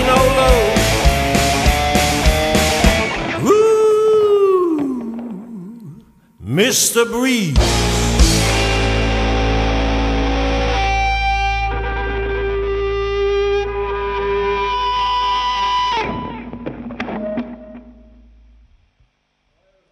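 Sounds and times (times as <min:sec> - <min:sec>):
distorted electric guitar ringing: 0:00.0 - 0:03.5, 0:05.2 - 0:18.9
bass guitar: 0:00.0 - 0:06.0, 0:07.5 - 0:18.8
final band hits: 0:00.0 - 0:11.2.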